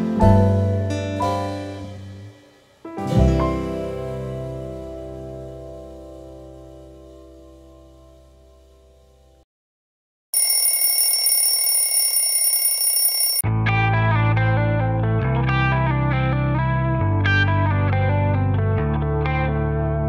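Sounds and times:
plucked guitar-like background music: 0:00.0 - 0:02.3, 0:02.9 - 0:08.2, 0:13.5 - 0:20.0
high ringing sound effect: 0:10.4 - 0:13.4.

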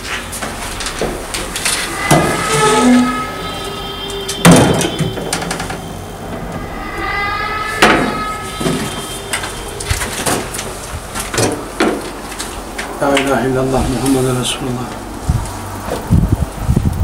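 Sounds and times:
heavy blows with ringing tones: 0:00.0 - 0:16.9.

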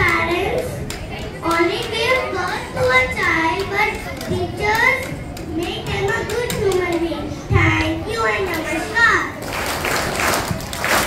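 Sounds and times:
child speaking through microphone: 0:00.0 - 0:09.4.

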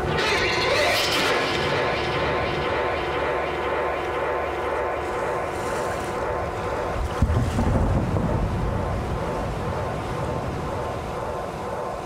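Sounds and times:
low rumble: 0:00.0 - 0:12.0
rushing wind-like noise: 0:00.0 - 0:12.0
steady held drone tones: 0:00.0 - 0:12.0.

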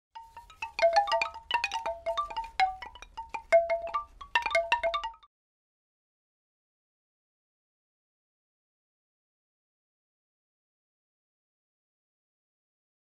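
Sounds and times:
bell-like chimes: 0:00.2 - 0:05.2.

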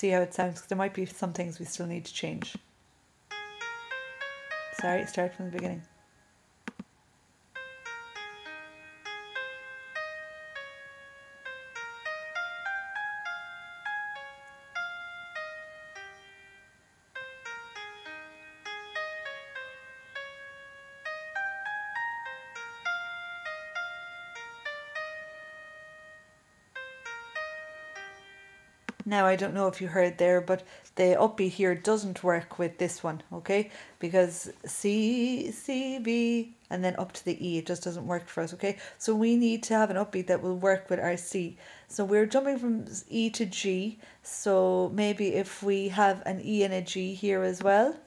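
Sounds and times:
piano-like melody playback: 0:03.3 - 0:06.1, 0:07.6 - 0:29.5.

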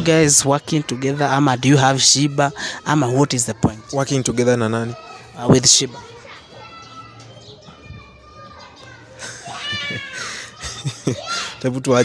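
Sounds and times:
children's voices: 0:00.0 - 0:12.0.

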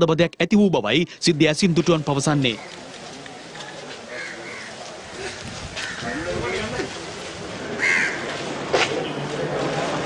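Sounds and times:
outdoor background noise: 0:00.0 - 0:10.0
crow cawing: 0:04.1 - 0:04.8, 0:07.8 - 0:08.3.

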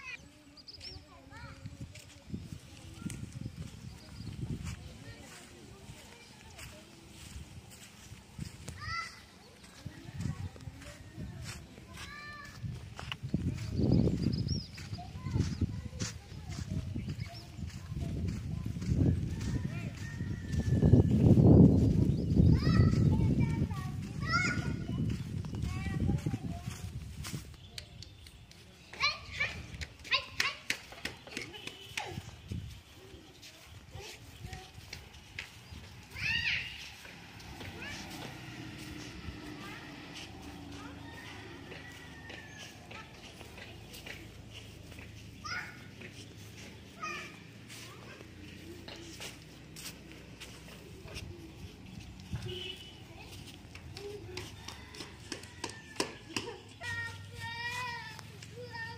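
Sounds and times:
distant children's voices: 0:00.0 - 0:58.9.

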